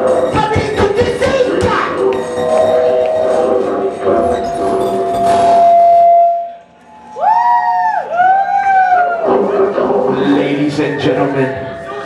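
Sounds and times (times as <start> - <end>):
held tone rising in pitch: 1.8 - 6.7.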